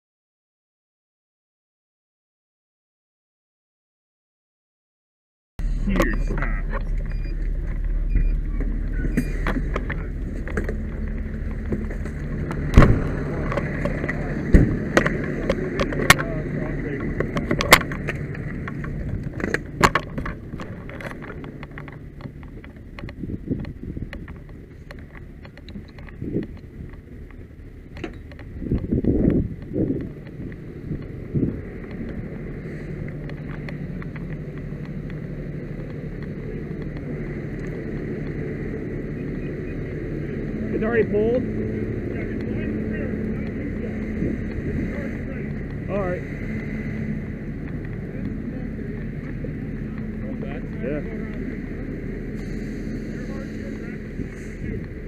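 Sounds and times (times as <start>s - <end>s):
diesel engine humming: 5.6s - 55.0s.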